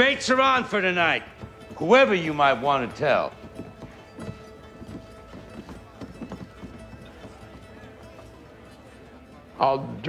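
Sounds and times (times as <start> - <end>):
horse hooves clopping: 0.0 - 10.0
faint background voices: 1.3 - 10.0.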